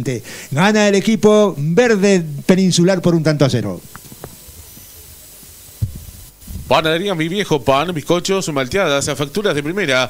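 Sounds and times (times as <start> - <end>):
background hiss: 0.0 - 10.0
short low thump: 5.8 - 6.7.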